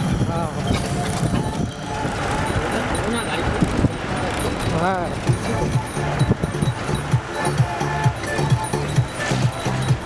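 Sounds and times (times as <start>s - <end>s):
faint voices: 0.0s - 10.0s
road and engine rumble: 0.0s - 10.0s.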